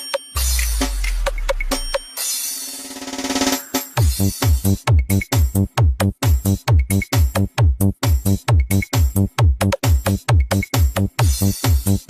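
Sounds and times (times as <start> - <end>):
electronic dance music: 0.0 - 12.0
fast drum roll with cymbals: 0.4 - 4.8.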